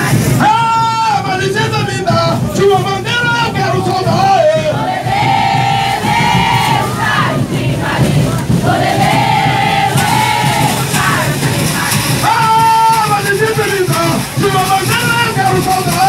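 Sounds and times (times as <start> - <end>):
group singing a chant: 4.0 - 14.2.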